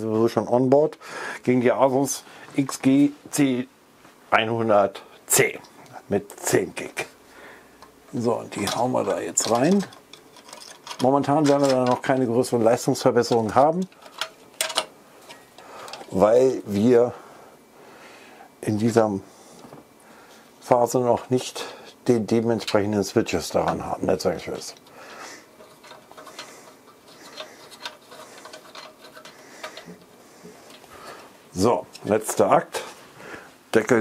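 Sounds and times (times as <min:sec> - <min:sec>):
small clicks of handling cables: 0:13.3 - 0:16.2, 0:25.6 - 0:31.2.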